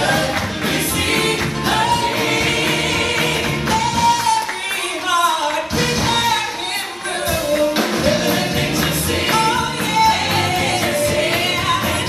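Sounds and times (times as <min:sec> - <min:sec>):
backing singers: 0:00.0 - 0:12.0
musical accompaniment: 0:00.0 - 0:12.0.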